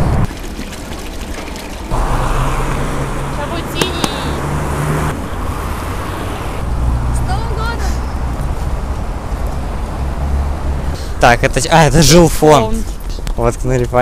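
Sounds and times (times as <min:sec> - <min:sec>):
traffic noise: 0:00.0 - 0:00.4, 0:01.4 - 0:14.0.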